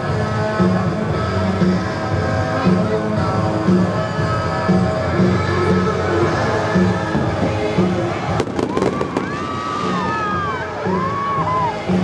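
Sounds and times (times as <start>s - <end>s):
fountain show music: 0.0s - 12.0s
fireworks cracking: 8.3s - 10.5s
fireworks whistling: 8.3s - 11.1s.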